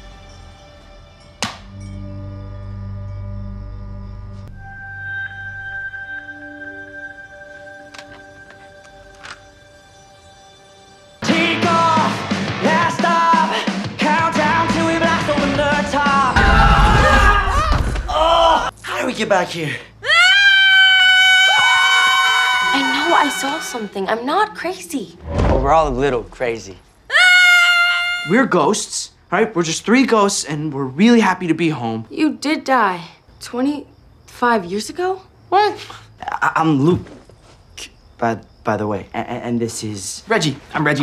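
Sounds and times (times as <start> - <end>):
low sustained notes: 0.0 - 11.2
girl screaming: 16.4 - 18.7, 20.0 - 24.0, 27.1 - 28.3
voices screaming: 20.0 - 24.1, 27.1 - 28.4.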